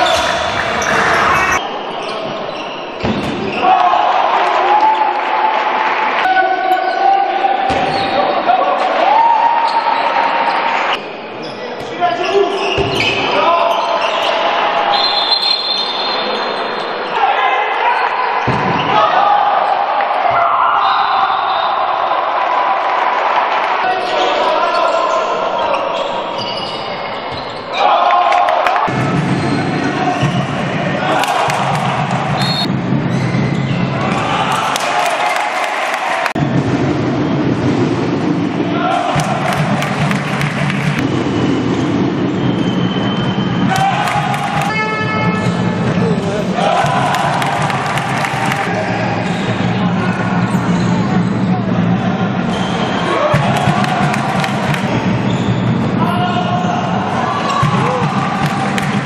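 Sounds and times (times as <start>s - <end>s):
players shouting: 27.6s - 32.7s, 38.5s - 41.7s, 42.6s - 59.0s
ball bouncing on court floor: 39.1s - 41.1s, 57.4s - 59.0s.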